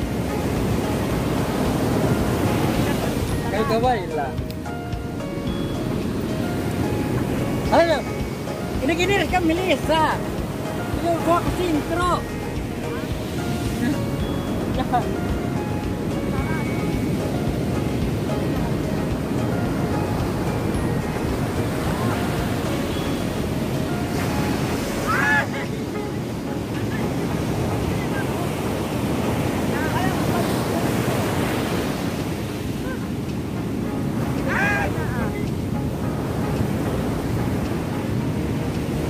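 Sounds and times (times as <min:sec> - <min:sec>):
surf breaking on beach: 0:00.0 - 0:39.0
wind buffeting microphone: 0:00.0 - 0:39.0
people shouting: 0:25.0 - 0:25.7, 0:34.4 - 0:35.2.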